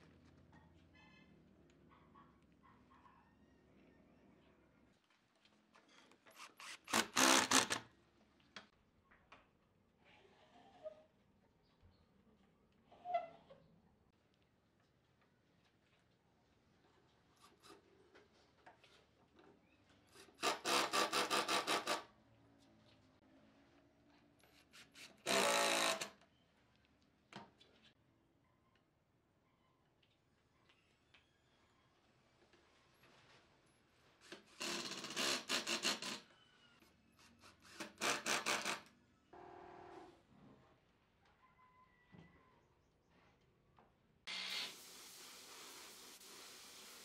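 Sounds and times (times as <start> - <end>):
impact driver whir: 6.4 - 7.8, 25.2 - 26.1.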